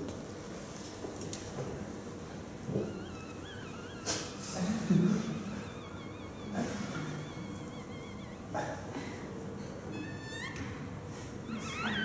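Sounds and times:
wavering high electronic tone: 2.9s - 8.6s.

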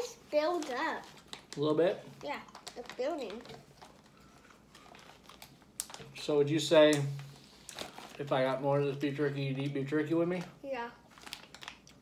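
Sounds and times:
faint clicks and rustles of jerky: 0.0s - 6.1s.

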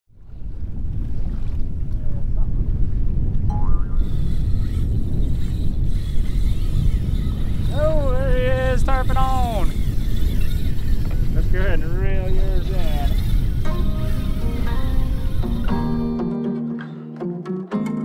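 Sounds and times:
wind buffeting microphone: 0.1s - 16.1s.

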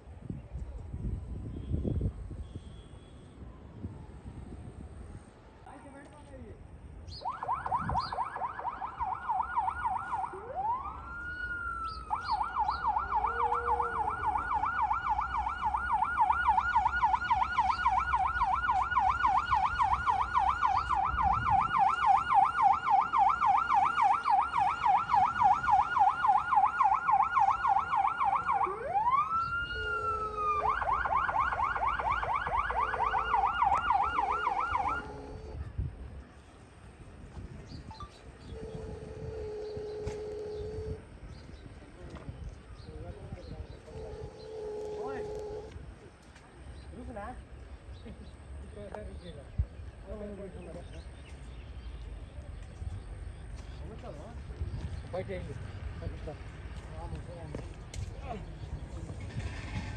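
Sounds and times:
ambulance siren yelp: 7.2s - 35.9s, 37.8s - 41.1s, 43.6s - 45.9s
siren wail: 7.2s - 35.9s, 37.8s - 41.6s, 43.0s - 46.0s.

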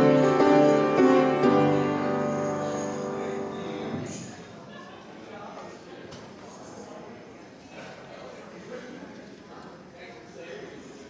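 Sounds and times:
faint chatter of people: 0.0s - 11.0s.

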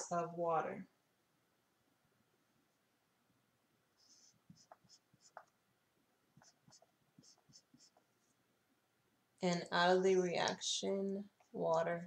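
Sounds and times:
marker scratching on paper: 4.0s - 5.6s, 6.3s - 8.3s.

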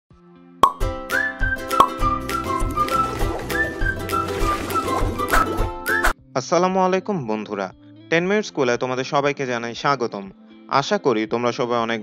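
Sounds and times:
sharp pop: 0.6s - 0.9s, 1.7s - 2.1s.

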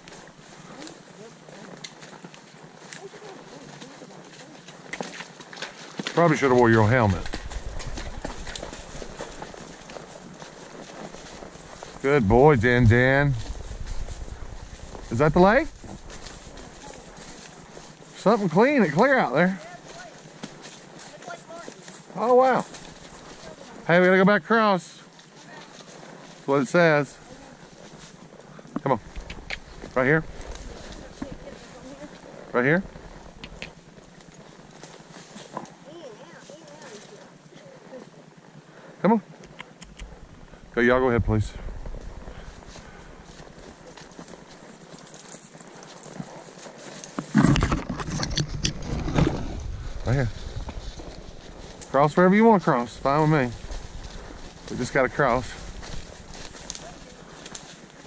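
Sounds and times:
hooves crunching through leaves: 0.0s - 39.5s, 40.1s - 58.0s
sharp hoof click: 1.6s - 12.1s, 27.2s - 32.2s, 32.9s - 35.8s, 39.3s - 40.5s, 42.4s - 52.0s.

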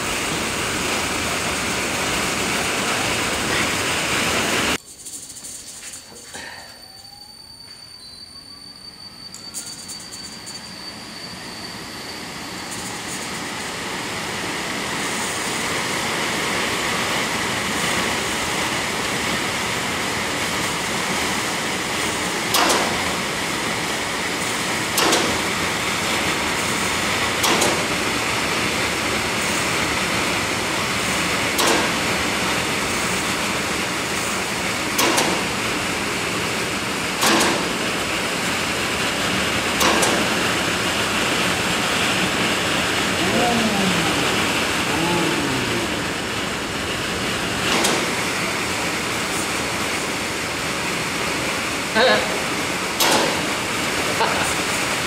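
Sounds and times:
electric blower rushing air: 41.9s - 48.1s.

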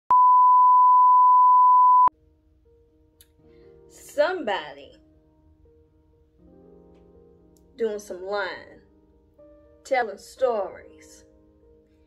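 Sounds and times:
high pure test tone beep: 0.1s - 2.1s.

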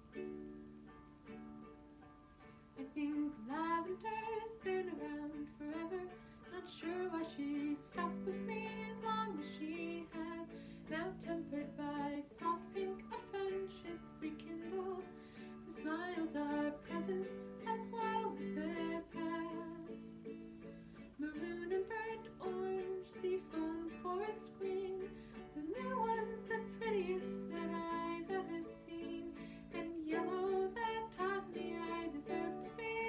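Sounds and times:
ukulele chords: 0.0s - 33.0s
woman singing: 2.8s - 20.3s, 21.1s - 33.0s.

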